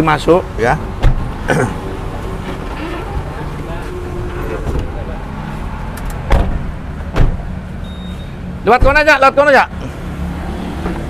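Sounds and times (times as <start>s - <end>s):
sharp knocks: 6.2s - 7.4s.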